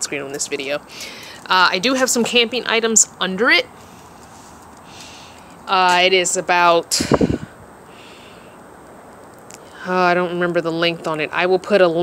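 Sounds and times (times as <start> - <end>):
faint steady background hiss: 0.0 - 12.0
microphone noise rumble: 6.9 - 7.7.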